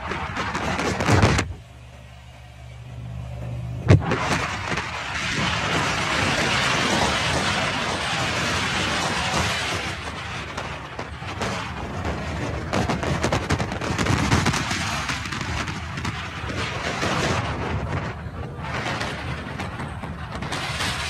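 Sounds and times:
wind buffeting microphone: 0.0 - 1.6, 3.9 - 21.0.

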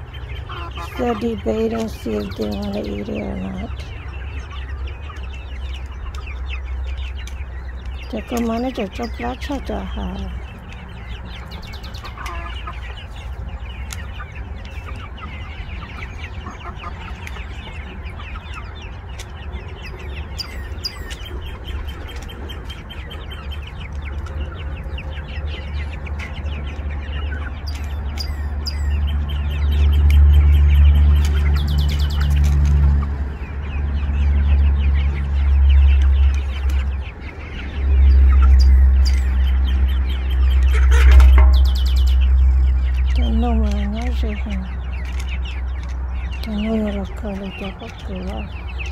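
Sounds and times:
young chickens clucking: 0.0 - 48.9
low rumble: 17.0 - 48.9.

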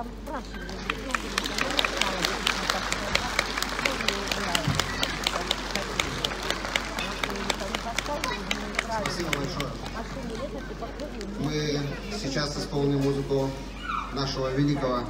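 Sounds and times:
people talking: 0.0 - 13.6
audience applauding: 0.7 - 11.6.

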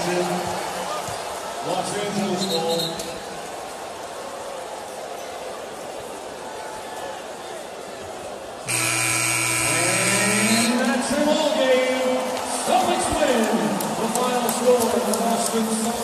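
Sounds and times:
arena crowd noise: 0.0 - 16.0
arena buzzer: 8.6 - 11.1
man's voice: 9.6 - 16.0.

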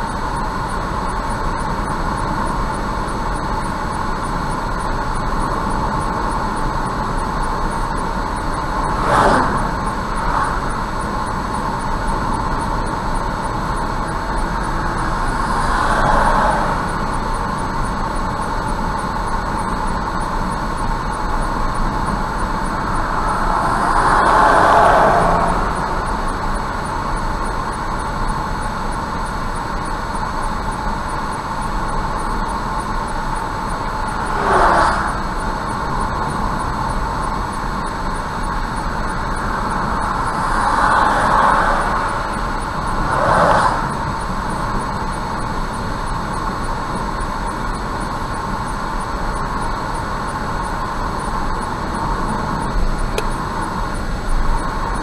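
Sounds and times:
car road and engine noise: 0.0 - 55.0
oncoming vehicles passing: 14.6 - 17.2, 22.2 - 26.8, 34.2 - 35.3, 39.6 - 44.0.

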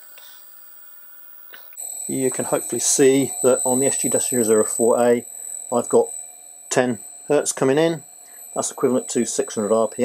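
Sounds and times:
high-pitched motor whine: 0.0 - 10.0.

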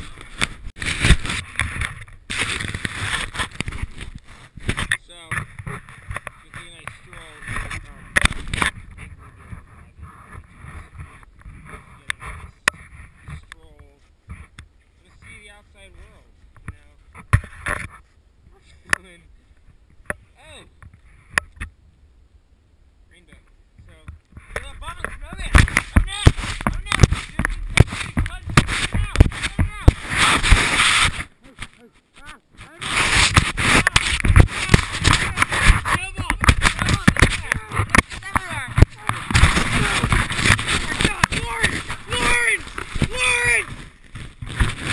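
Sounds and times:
snow clumps hitting camera: 0.0 - 13.5, 24.5 - 44.9
young person yelling: 41.0 - 43.7.

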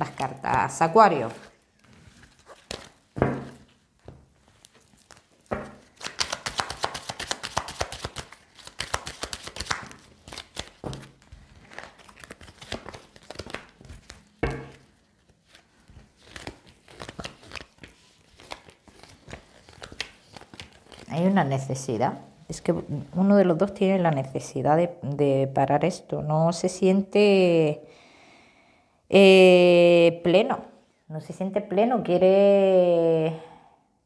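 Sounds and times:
cards being shuffled: 0.4 - 21.4.

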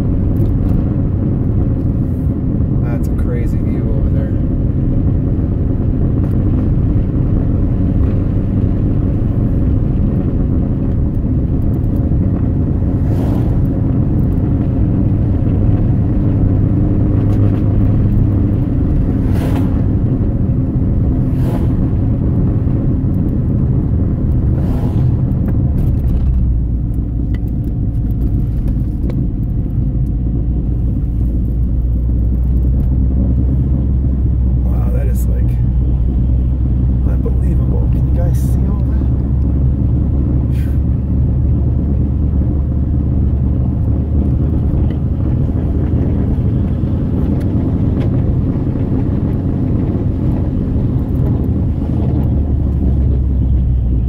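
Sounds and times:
car engine running: 0.0 - 54.0
road and tyre rumble: 0.0 - 54.0.

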